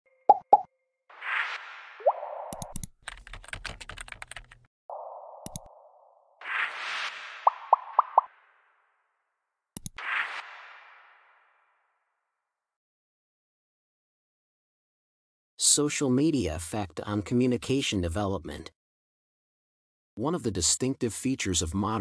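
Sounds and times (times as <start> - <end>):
mouse clicks: 2.5 - 2.9, 5.4 - 5.7, 9.8 - 10.0
keyboard typing clicks: 2.5 - 4.6, 5.4 - 5.7, 9.8 - 10.0.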